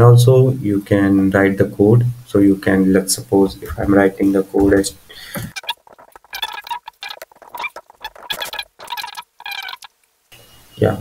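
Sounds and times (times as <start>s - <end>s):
computer keyboard typing: 5.5s - 9.9s.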